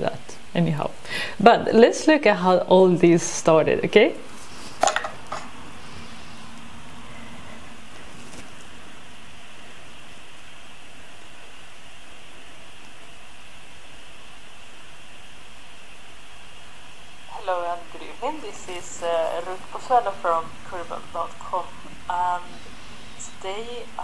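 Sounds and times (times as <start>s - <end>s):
background hiss: 0.0s - 24.0s
faint low hum: 0.0s - 24.0s.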